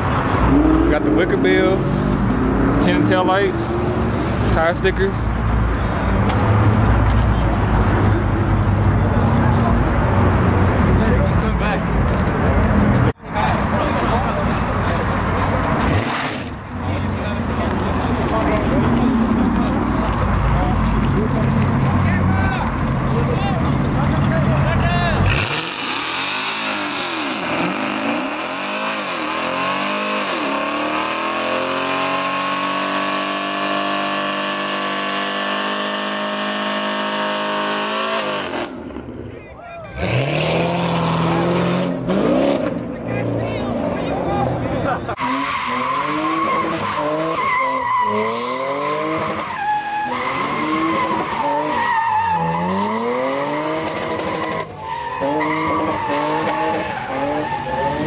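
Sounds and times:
car engine revving: 0.1 - 39.2, 40.0 - 58.0
tyres squealing: 45.2 - 58.0.

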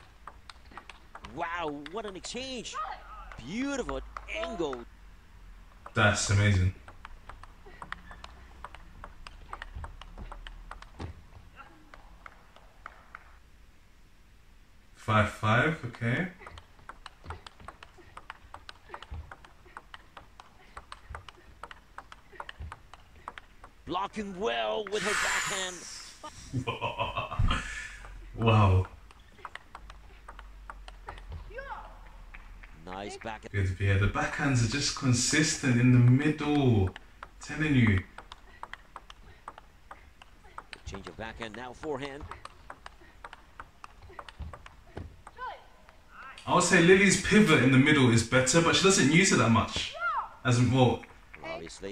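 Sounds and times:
table tennis ball clicking: 0.0 - 2.7, 3.3 - 4.9, 5.7 - 13.3, 15.8 - 25.0, 28.0 - 33.3, 34.8 - 46.8.

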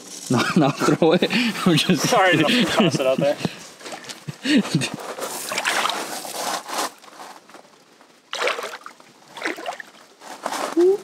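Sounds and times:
water lapping against rocks: 5.2 - 6.9, 8.2 - 10.8.

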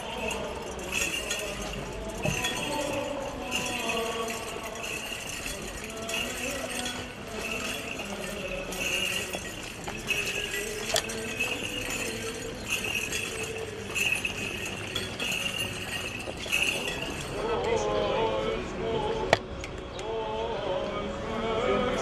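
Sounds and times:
censer bells jingling: 0.0 - 17.8
people singing: 0.0 - 22.0.

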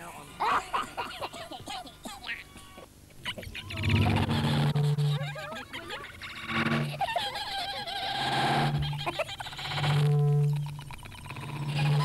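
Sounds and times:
warbling pitched sounds: 3.5 - 7.0
short low held tones: 9.7 - 12.0.

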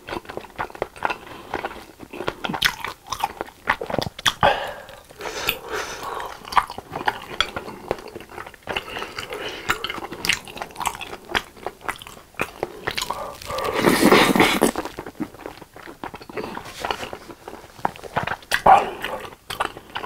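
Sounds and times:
wet sticky chewing: 0.0 - 20.0.

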